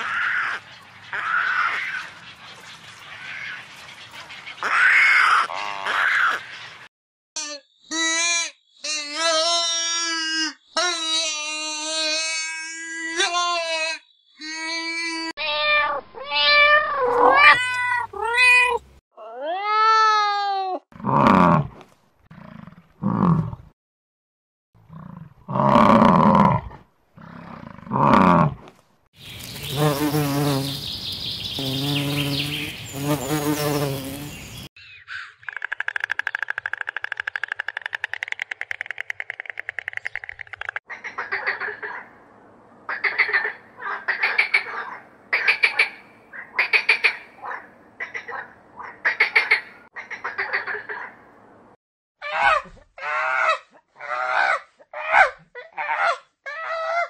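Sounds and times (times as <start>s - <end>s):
insect buzzing: 29.3s - 34.7s.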